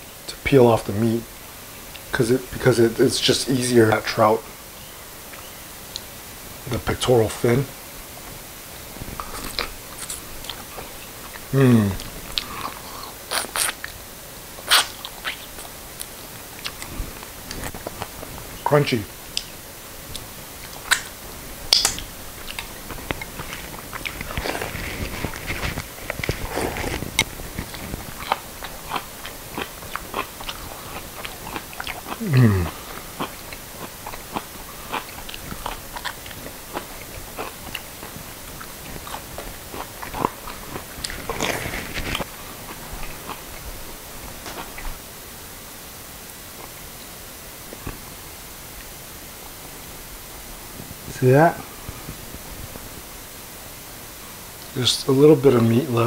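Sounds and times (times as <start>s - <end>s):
chewing crispy fried fish: 9.0s - 14.0s, 14.6s - 18.5s, 19.3s - 45.0s.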